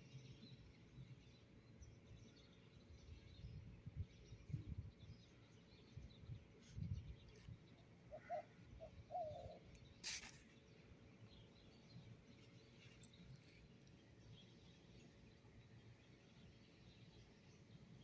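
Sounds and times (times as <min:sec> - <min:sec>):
brief rustle: 0:10.0 - 0:10.6.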